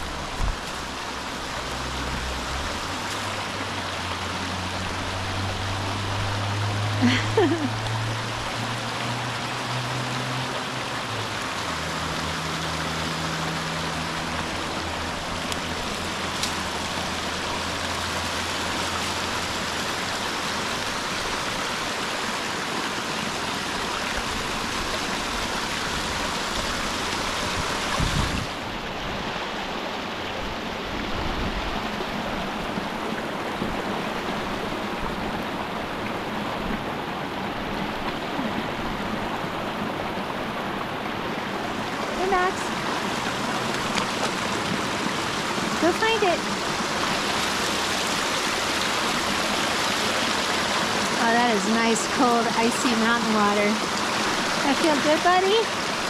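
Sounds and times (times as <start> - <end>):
stream babbling over rocks: 0.0 - 56.0.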